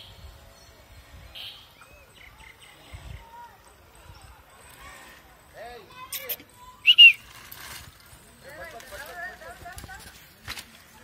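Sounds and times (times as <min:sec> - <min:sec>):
high-pitched whistle: 0:06.8 - 0:07.3.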